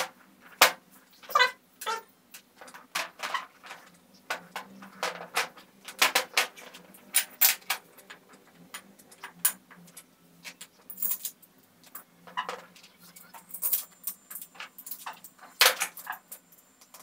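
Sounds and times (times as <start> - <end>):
metal parts clicking and clinking: 1.2 - 17.0.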